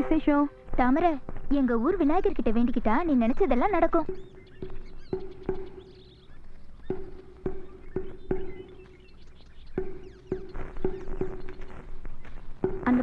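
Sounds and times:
birds chirping faintly: 0:00.0 - 0:13.0
pitched percussion strokes: 0:03.7 - 0:11.9.

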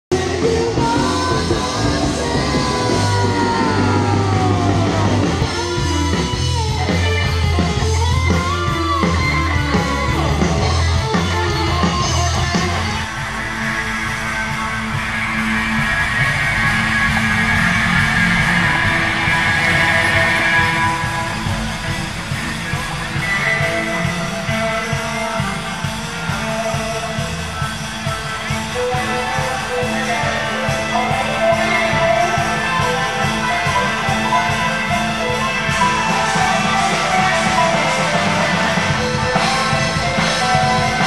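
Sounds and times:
rock band playing: 0:00.1 - 0:41.0.

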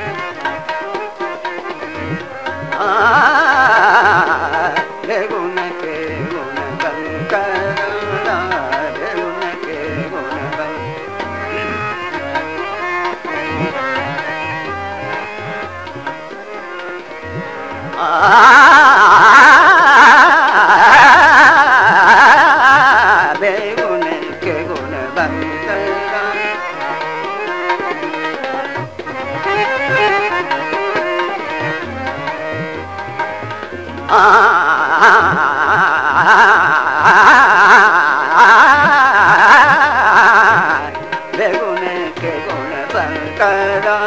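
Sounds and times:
man singing classical vocal runs: 0:00.0 - 0:44.0
tabla drumming: 0:00.0 - 0:44.0.

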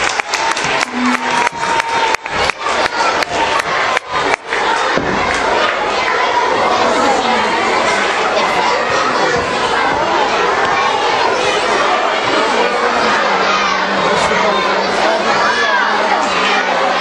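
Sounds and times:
children cheering and shouting: 0:00.0 - 0:17.0
many-voiced chatter: 0:00.0 - 0:17.0.

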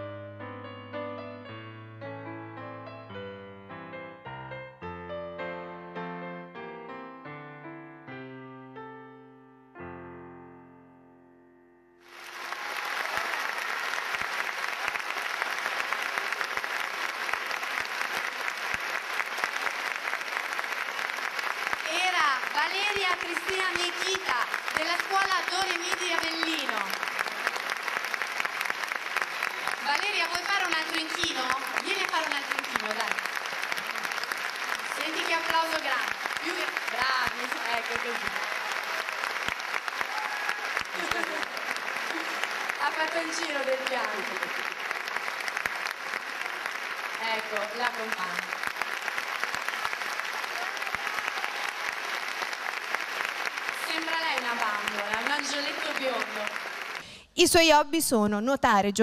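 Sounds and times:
audience applauding: 0:12.0 - 0:57.2.

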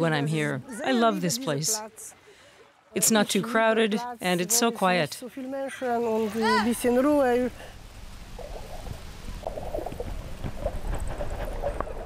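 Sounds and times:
underwater rumble of moving water: 0:05.6 - 0:12.0.

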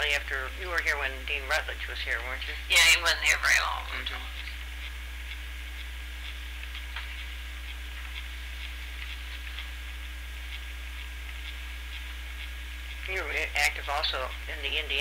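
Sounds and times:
faint irregular ticks: 0:00.0 - 0:15.0
low electrical hum: 0:00.0 - 0:15.0.

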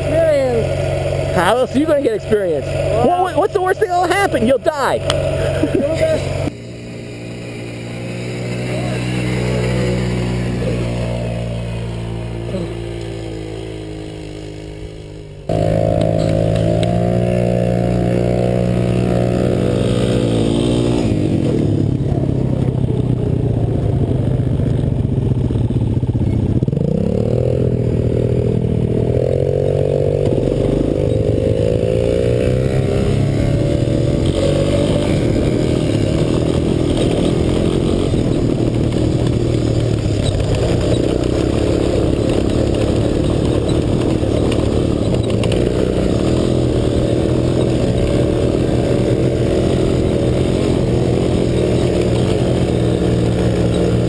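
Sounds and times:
quad bike engine revving: 0:00.0 - 0:54.0.

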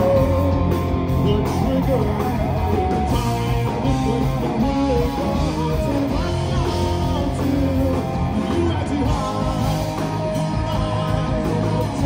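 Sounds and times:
bass guitar: 0:00.0 - 0:12.0
drum kit: 0:00.0 - 0:12.0
electric guitars: 0:00.0 - 0:12.0.

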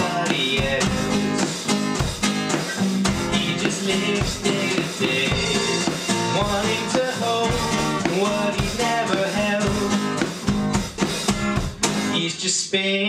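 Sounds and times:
drum kit steady beat: 0:00.0 - 0:12.2
electric guitar: 0:00.0 - 0:12.2.

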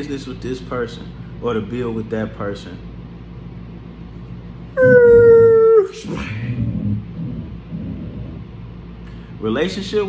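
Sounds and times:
dog whining: 0:04.8 - 0:08.5.

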